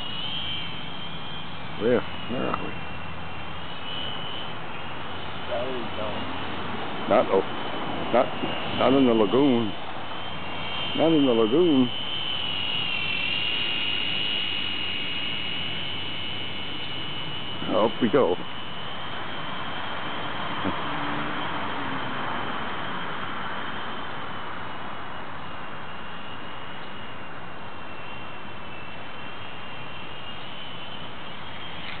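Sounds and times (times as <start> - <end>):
continuous hiss: 0.0 - 32.0
toy helicopter motor whine: 0.0 - 32.0.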